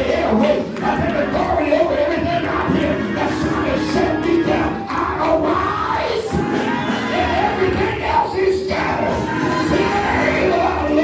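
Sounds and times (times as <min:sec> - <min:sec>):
man shouting into a microphone: 0:00.0 - 0:11.0
music: 0:00.0 - 0:11.0
crowd voices: 0:00.2 - 0:11.0.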